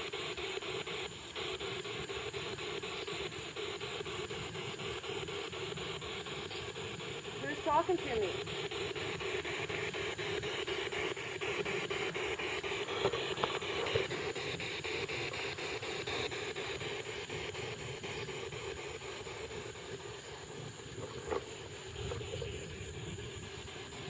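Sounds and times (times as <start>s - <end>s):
radio static with rapid clicks: 7.4s - 24.0s.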